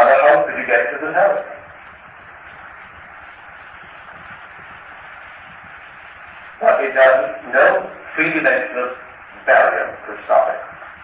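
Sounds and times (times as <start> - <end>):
tape hiss: 0.0 - 11.0.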